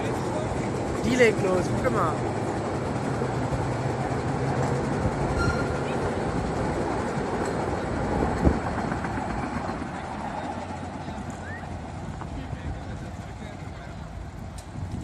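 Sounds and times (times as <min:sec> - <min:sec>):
small train wheels clattering: 0:04.5 - 0:10.0.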